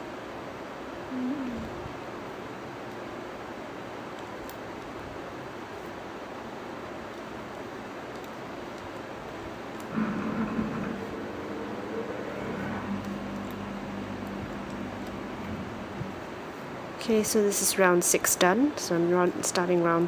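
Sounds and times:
steady background hiss: 0:00.0 - 0:20.0
droning hum: 0:09.7 - 0:17.9.

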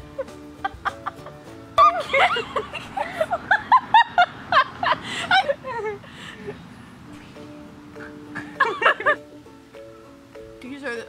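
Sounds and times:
background music with held notes: 0:00.0 - 0:05.8, 0:06.5 - 0:11.0
girl laughing high-pitched: 0:00.1 - 0:06.1.

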